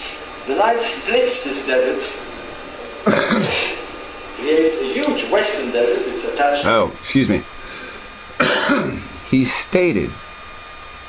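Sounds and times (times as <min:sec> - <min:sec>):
person clearing throat: 0:03.0 - 0:03.8, 0:08.4 - 0:09.2.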